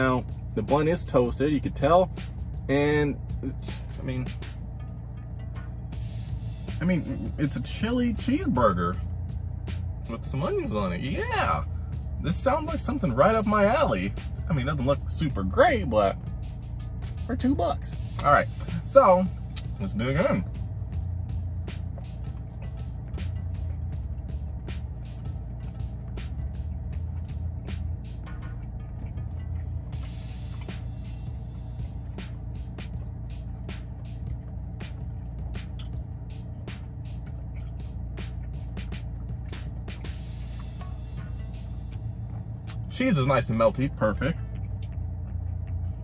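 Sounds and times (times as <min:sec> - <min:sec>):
steady low hum: 0:00.0 - 0:46.0
crunchy chewing: 0:18.0 - 0:46.0.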